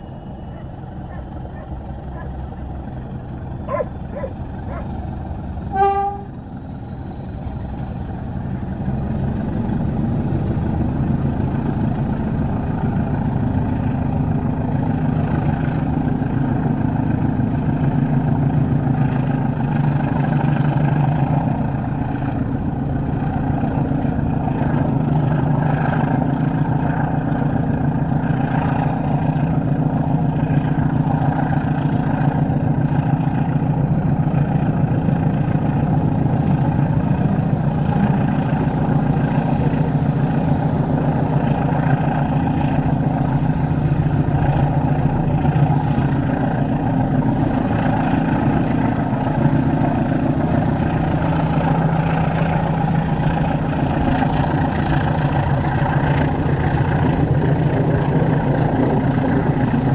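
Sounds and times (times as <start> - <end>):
locomotive engine hum: 0.0 - 59.9
train wheel and rail noise: 0.0 - 59.9
train horn toot: 5.7 - 6.4.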